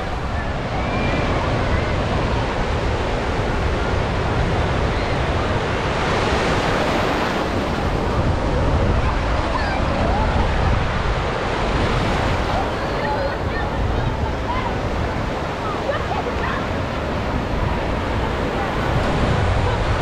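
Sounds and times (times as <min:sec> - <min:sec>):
surf washing over sand: 0:00.0 - 0:20.0
wind buffeting microphone: 0:00.0 - 0:20.0.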